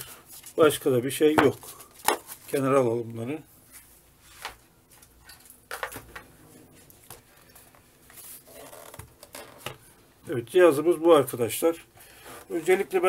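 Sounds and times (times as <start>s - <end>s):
soft rustles: 6.3s - 9.5s.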